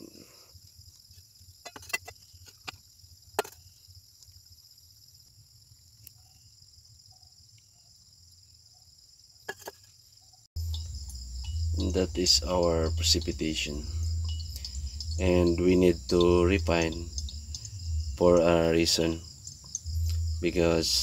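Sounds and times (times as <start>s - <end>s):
crickets chirring: 0.0s - 21.0s.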